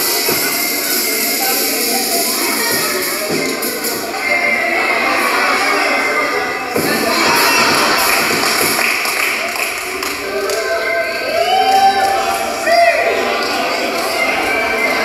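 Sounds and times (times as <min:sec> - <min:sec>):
people chattering and cheering: 0:00.0 - 0:15.0.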